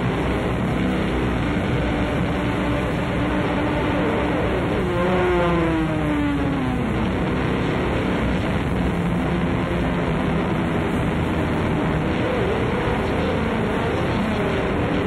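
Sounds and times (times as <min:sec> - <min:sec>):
distorted guitar and bass drone: 0:00.0 - 0:15.0.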